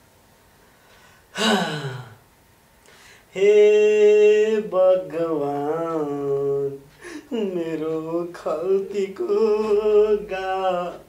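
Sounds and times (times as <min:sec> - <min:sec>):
man sighing: 0:01.3 - 0:02.2.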